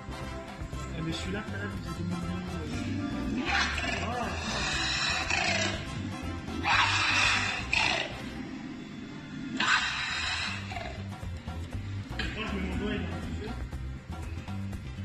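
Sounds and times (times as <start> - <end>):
background music with low beat: 0.0 - 8.7, 9.6 - 15.0
dinosaur shrieking calls: 2.9 - 11.3.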